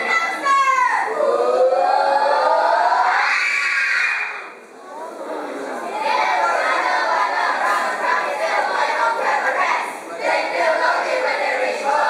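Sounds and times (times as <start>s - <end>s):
voices rising in unison: 0.0s - 12.0s.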